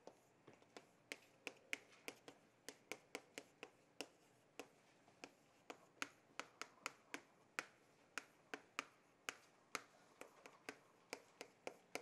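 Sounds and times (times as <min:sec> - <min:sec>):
chalk tapping on chalkboard: 0:00.0 - 0:12.0.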